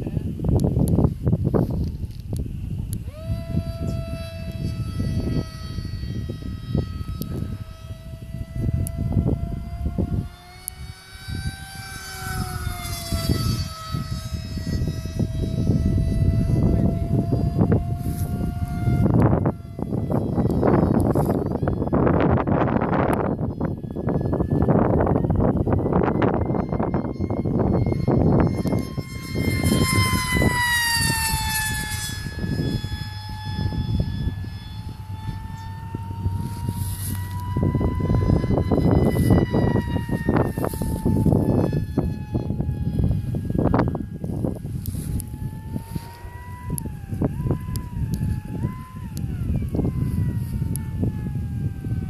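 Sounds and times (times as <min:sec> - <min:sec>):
electric model plane motor whine: 0:00.0 - 0:52.0
wind rumbling on microphone: 0:00.0 - 0:52.0.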